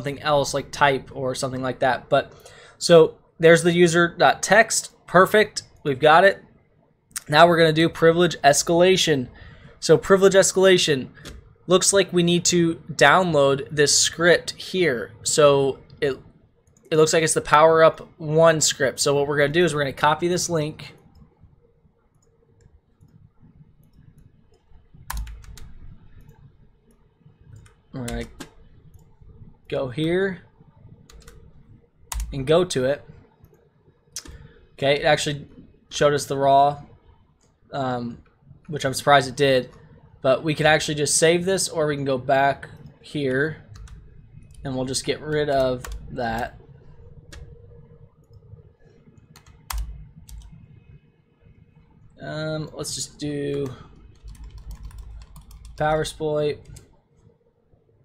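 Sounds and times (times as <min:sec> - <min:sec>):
computer keyboard keystrokes: 0:23.8 - 0:26.4, 0:32.1 - 0:32.4, 0:43.7 - 0:44.6, 0:45.5 - 0:46.4, 0:49.3 - 0:50.6, 0:53.6 - 0:56.9.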